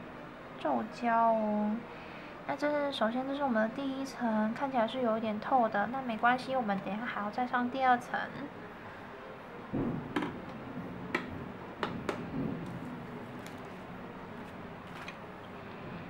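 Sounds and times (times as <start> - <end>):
steady low hiss: 7.6 - 16.0.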